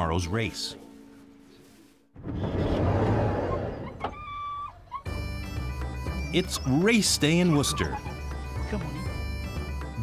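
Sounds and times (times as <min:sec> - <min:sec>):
dog whining: 0:03.4 - 0:05.3, 0:07.6 - 0:08.5.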